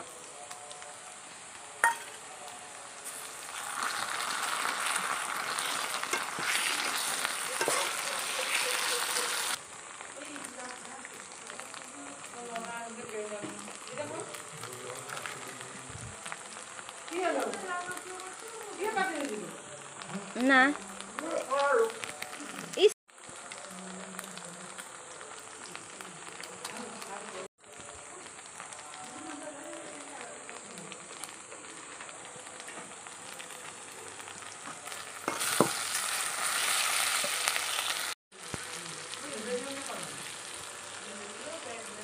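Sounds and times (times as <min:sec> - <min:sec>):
onions sizzling in hot oil: 0:00.0 - 0:42.0
metal spatula scraping pot: 0:03.8 - 0:09.4.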